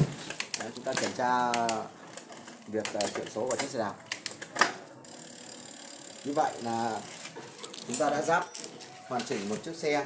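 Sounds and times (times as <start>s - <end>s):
bicycle chain and freewheel whirring: 4.4s - 9.0s.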